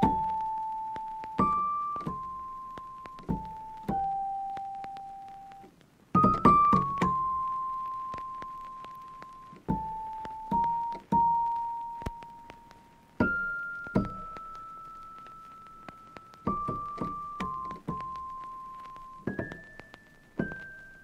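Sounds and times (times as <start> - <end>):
soft piano-like keyboard notes: 0.0 - 21.0.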